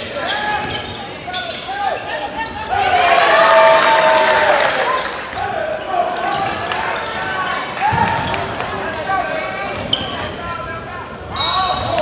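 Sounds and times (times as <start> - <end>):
people calling out in a hall: 0.0 - 12.0.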